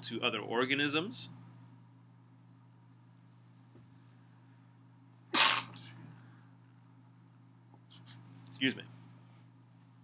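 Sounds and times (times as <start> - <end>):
man sneezing: 5.4 - 5.9.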